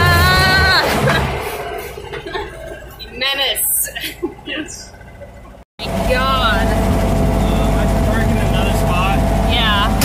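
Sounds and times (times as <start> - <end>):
car engine running under load: 0.0 - 10.0
road noise: 0.0 - 10.0
voices: 0.0 - 10.0.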